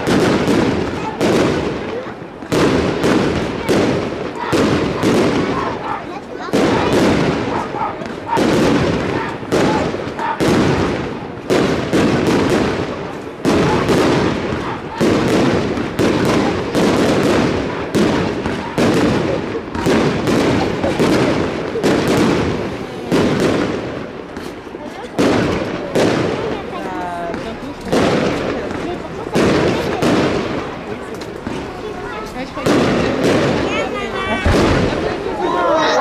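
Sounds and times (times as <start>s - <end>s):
firework bangs: 0.0s - 36.0s
firework crackling: 0.0s - 36.0s.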